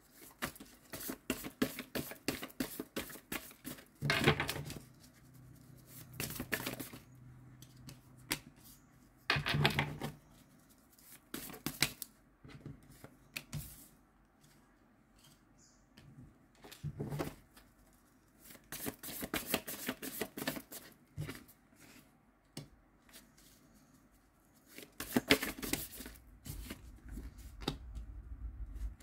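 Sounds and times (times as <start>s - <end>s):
cards being shuffled: 24.7s - 27.7s.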